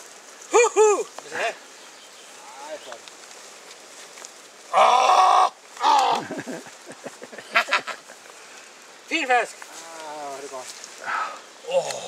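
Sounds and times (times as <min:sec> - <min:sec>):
drawn-out cry: 0:04.6 - 0:06.5.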